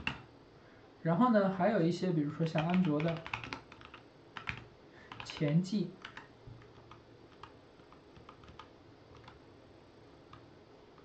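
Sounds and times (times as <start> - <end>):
computer keyboard typing: 0.0 - 0.2, 2.4 - 9.4.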